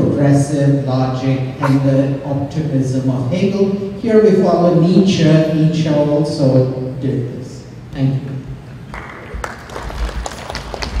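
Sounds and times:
audience clapping: 8.9s - 11.0s.

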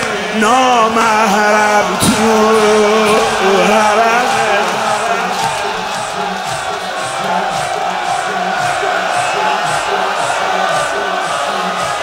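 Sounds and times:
crowd chanting: 0.0s - 12.0s
men beating their chests: 0.8s - 12.0s.

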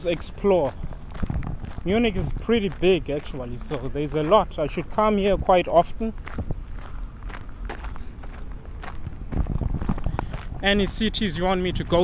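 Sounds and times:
footsteps crunching on gravel: 0.0s - 12.0s
wind rumble on microphone: 0.0s - 12.0s.

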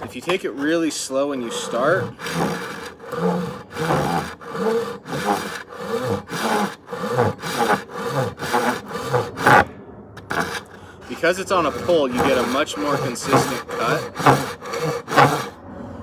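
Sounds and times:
pull saw rasping through wood: 0.0s - 15.6s.

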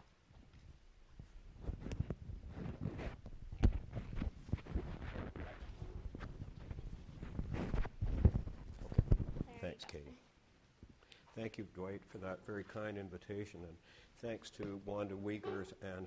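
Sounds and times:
lapel microphone being handled: 0.4s - 9.6s.

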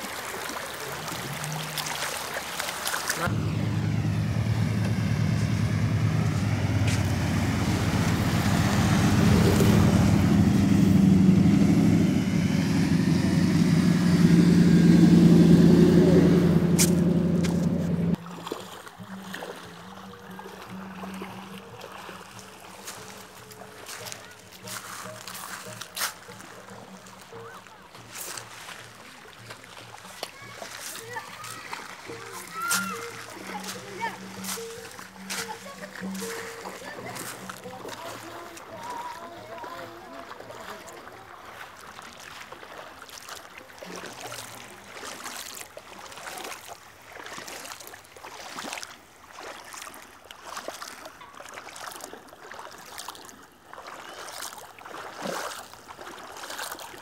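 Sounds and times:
water splashing in a stream: 0.0s - 57.0s
voices: 3.0s - 18.2s, 23.4s - 41.8s
vehicle engine humming: 3.2s - 18.3s, 32.0s - 40.7s
music with held low notes: 3.2s - 41.9s.

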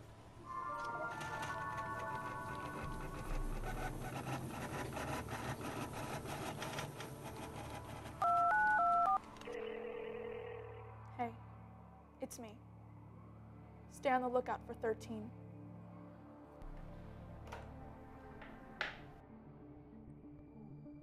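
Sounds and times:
background music with quick beat: 0.6s - 8.9s
touch-tone keypad beeps: 8.2s - 9.9s
steady telephone line tone: 8.2s - 11.5s.

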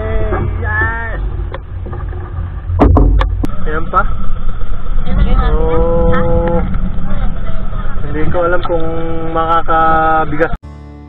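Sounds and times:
low rumble: 0.0s - 10.6s.

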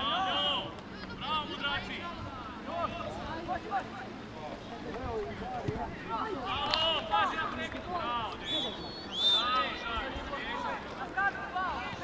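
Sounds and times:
players and coaches shouting: 0.0s - 12.0s.

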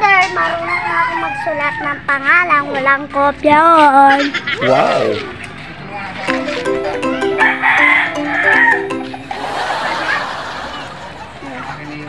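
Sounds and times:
short tune of quick notes: 6.3s - 9.9s.

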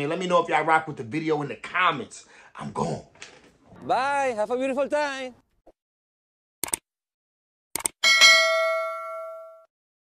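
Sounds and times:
bell-like chime: 8.0s - 9.7s.

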